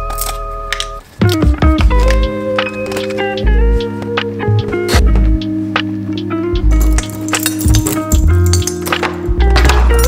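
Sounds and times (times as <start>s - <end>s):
background music: 0.0s - 10.0s
keys jingling in door lock: 6.8s - 9.0s.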